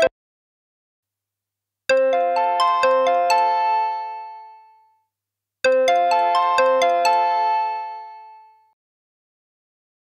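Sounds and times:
synthesized ringtone: 0:01.9 - 0:05.0, 0:05.7 - 0:08.8.

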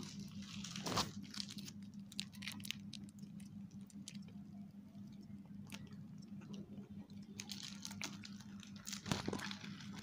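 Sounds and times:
plastic packets crinkling: 0:00.0 - 0:04.3, 0:05.7 - 0:10.0
low steady hum: 0:00.0 - 0:10.0.

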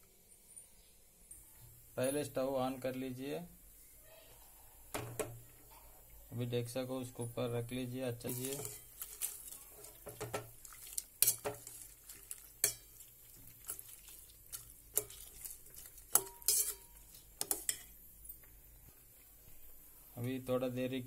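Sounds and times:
metal spoon scraping a steel pot: 0:08.3 - 0:09.9, 0:14.9 - 0:17.9.

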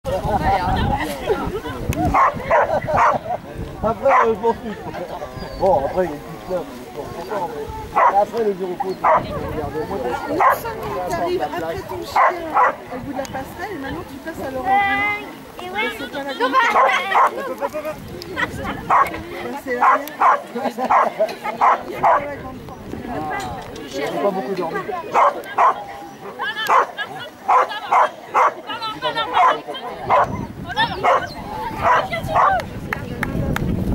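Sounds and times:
dog barking: 0:02.1 - 0:03.2, 0:04.1 - 0:04.4, 0:08.0 - 0:08.2, 0:09.0 - 0:09.4, 0:10.3 - 0:10.7, 0:12.1 - 0:12.8, 0:16.7 - 0:17.4, 0:18.9 - 0:19.1, 0:19.8 - 0:22.3, 0:25.1 - 0:25.8, 0:26.7 - 0:26.9, 0:27.5 - 0:28.6, 0:29.4 - 0:30.4, 0:31.0 - 0:32.6
dog yipping: 0:31.0 - 0:32.5.

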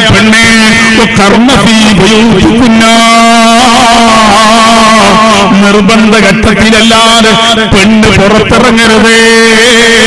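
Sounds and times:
man chanting a long note: 0:00.0 - 0:10.0.

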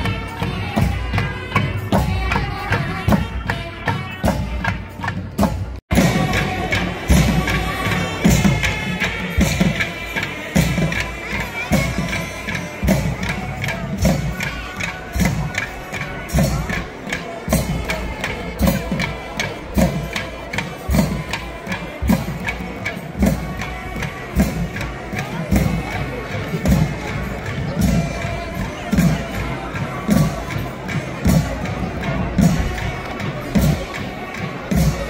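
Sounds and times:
crowd voices and cheering: 0:00.0 - 0:35.0
loud busy drumming: 0:00.0 - 0:35.0.

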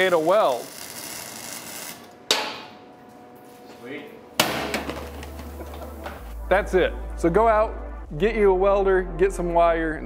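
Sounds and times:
metallic clang of struck steel: 0:04.4 - 0:05.1.

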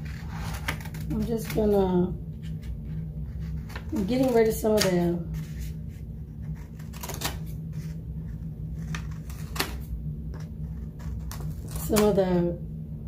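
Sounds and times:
paper handled and trimmed: 0:00.0 - 0:01.8, 0:02.4 - 0:12.2
steady low hum: 0:00.0 - 0:13.0.

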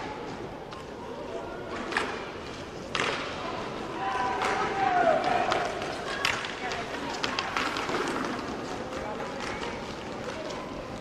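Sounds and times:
skate wheels rolling: 0:00.0 - 0:11.0
voices echoing in arena: 0:00.0 - 0:11.0
hockey sticks clacking: 0:01.7 - 0:11.0.

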